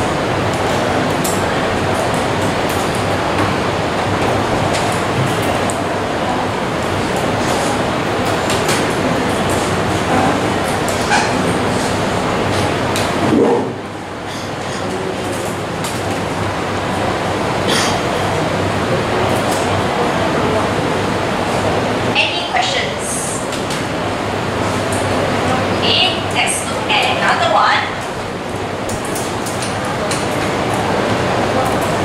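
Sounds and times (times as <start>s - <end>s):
loud room noise: 0.0s - 32.0s.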